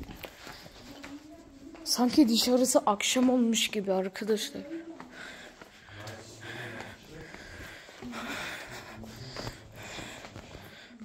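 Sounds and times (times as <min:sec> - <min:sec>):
faint background voices: 0:00.0 - 0:11.0
soft breathing and sniffing: 0:04.6 - 0:11.0.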